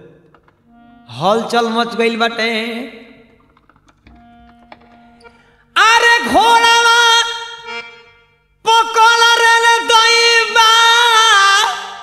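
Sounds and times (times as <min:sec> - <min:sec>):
person singing: 0:05.8 - 0:07.8, 0:08.7 - 0:12.0.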